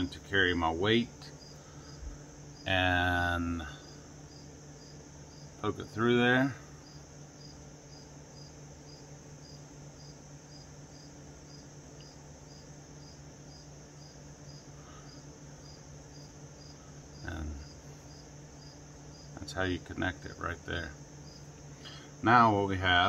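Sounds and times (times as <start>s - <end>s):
cricket chirping: 0.0s - 23.0s
fan humming: 0.0s - 23.0s.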